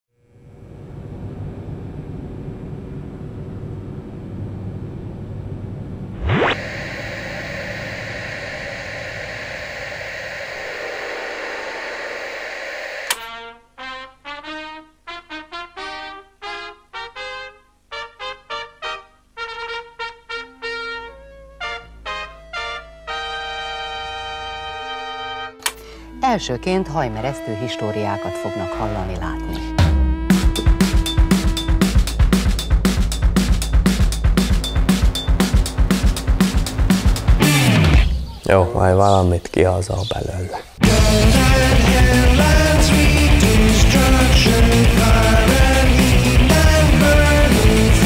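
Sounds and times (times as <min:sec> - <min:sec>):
tone sweeping upward: 0:06.1 - 0:13.2
television static hiss: 0:06.2 - 0:20.0
click: 0:13.0 - 0:13.3, 0:25.6 - 0:25.9.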